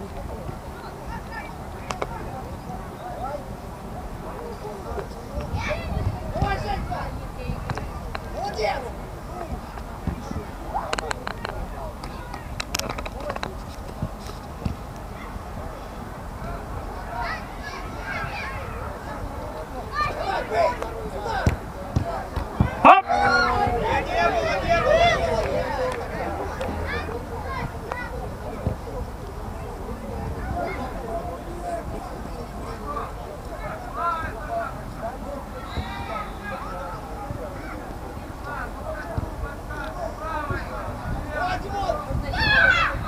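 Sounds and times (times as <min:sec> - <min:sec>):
voices shouting and calling out: 0:00.0 - 0:43.0
distant players shouting: 0:16.7 - 0:29.0, 0:35.4 - 0:43.0.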